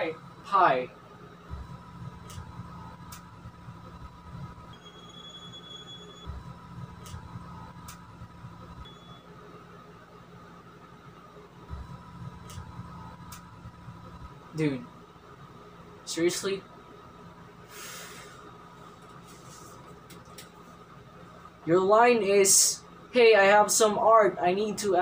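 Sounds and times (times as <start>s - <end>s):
low hum: 0.0s - 21.7s
thin high tone: 4.7s - 6.3s.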